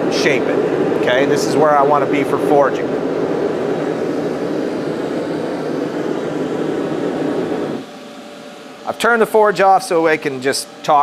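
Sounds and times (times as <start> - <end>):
forge burner rushing: 0.0 - 11.0.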